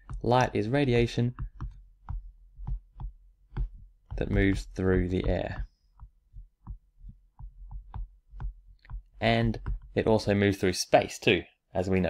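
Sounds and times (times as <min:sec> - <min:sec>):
stylus tapping on tablet: 0:00.0 - 0:10.1.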